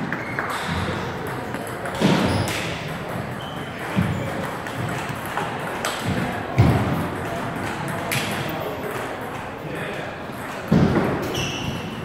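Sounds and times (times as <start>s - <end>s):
table tennis ball bouncing on floor: 0.1s - 9.4s, 10.3s - 11.8s.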